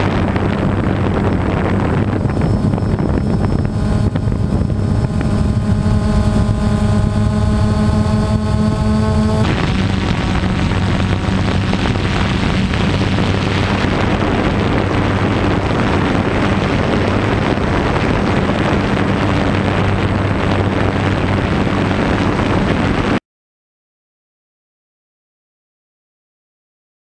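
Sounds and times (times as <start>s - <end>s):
drone propellers whirring: 0.0s - 23.2s
rushing noise: 0.0s - 23.2s.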